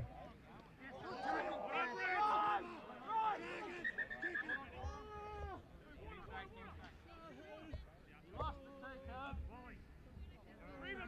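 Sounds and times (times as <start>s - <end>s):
short calls from people: 3.3s - 4.7s.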